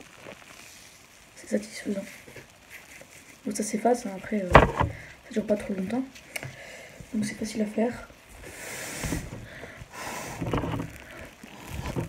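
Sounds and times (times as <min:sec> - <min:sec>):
person blowing through wet towel: 0:08.3 - 0:12.0.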